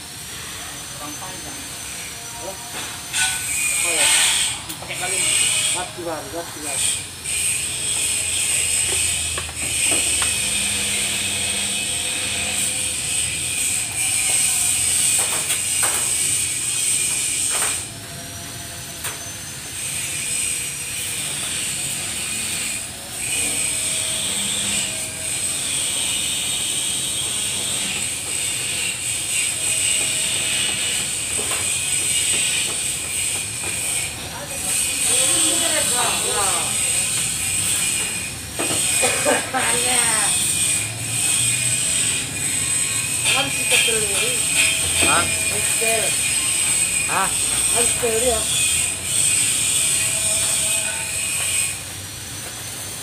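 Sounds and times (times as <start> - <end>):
angle grinder on steel: 0.0 - 53.0.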